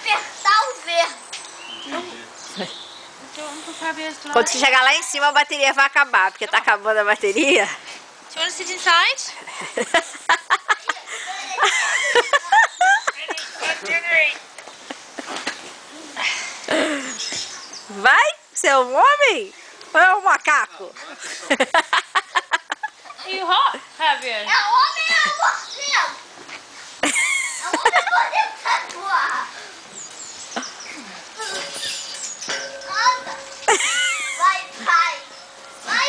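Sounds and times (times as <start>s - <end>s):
voices calling out: 22.9s - 36.0s.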